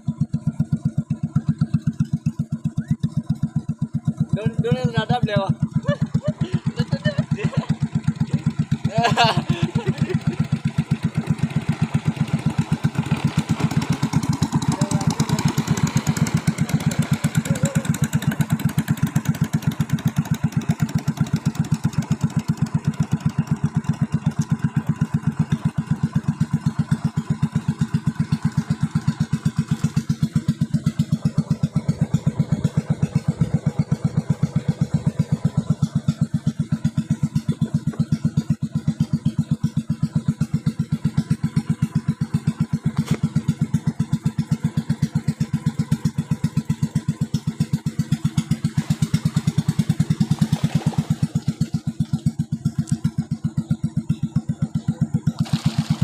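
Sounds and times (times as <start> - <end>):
boat engine puttering: 0.0 - 56.0.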